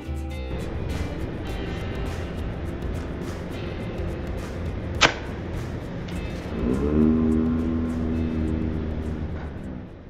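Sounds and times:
golf club striking ball: 4.4 - 6.3.

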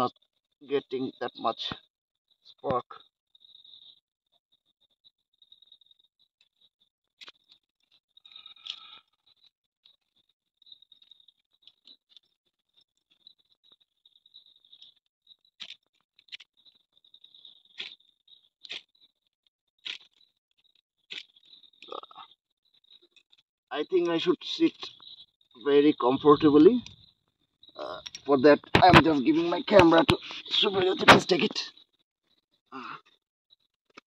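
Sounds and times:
high insect trill: 13.0 - 19.1, 19.8 - 32.0.

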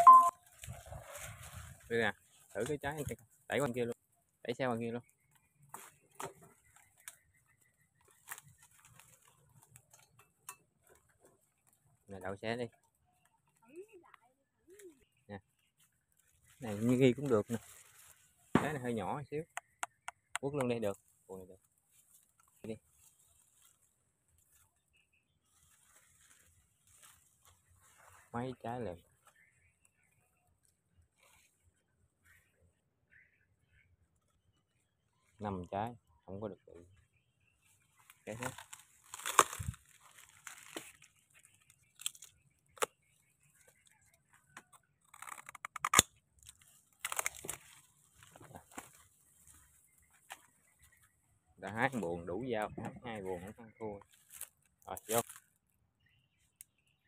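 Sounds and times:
tiny high peeps: 0.0 - 0.4
dry palm fibre rustling: 0.4 - 3.7, 5.2 - 12.2, 14.7 - 19.0, 19.6 - 30.2, 37.6 - 52.1, 54.0 - 55.6.

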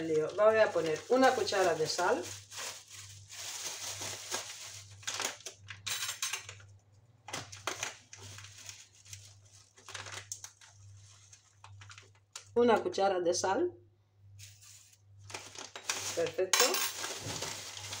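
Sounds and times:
plastic bag crinkling: 0.0 - 5.9, 7.3 - 12.6, 14.4 - 18.0.

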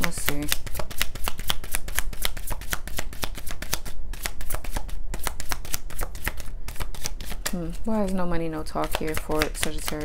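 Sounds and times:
cards being shuffled: 0.0 - 7.9, 8.7 - 10.0.

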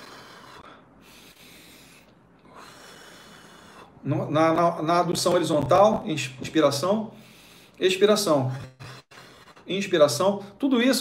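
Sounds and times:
man breathing deeply: 0.0 - 4.0, 7.1 - 7.8, 8.6 - 9.7.

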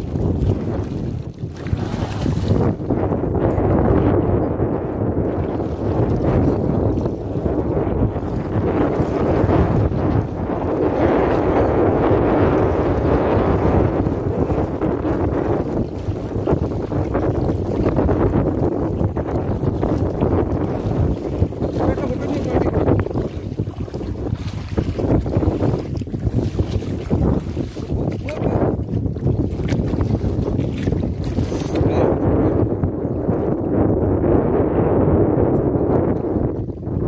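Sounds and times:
fish thrashing in water: 0.0 - 2.8, 5.2 - 31.9
person wading through water: 0.0 - 4.1, 4.7 - 33.8
wind buffeting microphone: 0.0 - 37.0.

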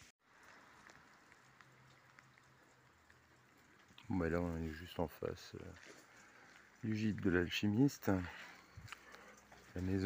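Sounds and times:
light rain hiss: 0.0 - 10.0
soft water drips: 0.2 - 10.0.

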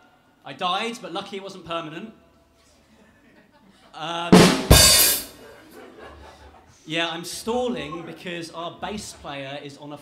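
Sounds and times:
drum kit sting with cymbal: 4.3 - 5.3.

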